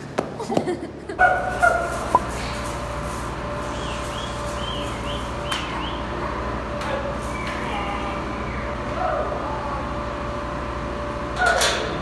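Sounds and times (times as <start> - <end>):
ventilation fans humming: 0.0 - 12.0.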